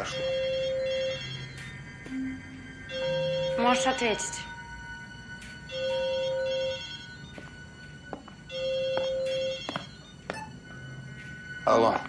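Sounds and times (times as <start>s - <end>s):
mobile phone ringing: 0.0s - 12.0s.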